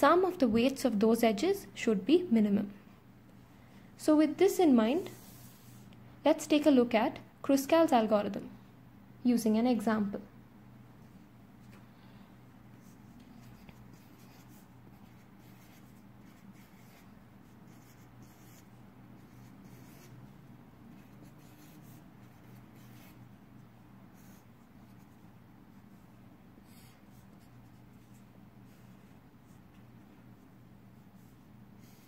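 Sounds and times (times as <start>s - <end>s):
steady low hum: 0.0s - 32.0s
marker pen scratching on paper: 12.8s - 29.8s, 31.0s - 32.0s.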